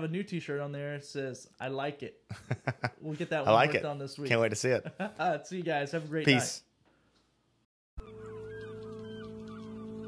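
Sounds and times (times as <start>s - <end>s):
gliding bird calls: 8.0s - 10.0s.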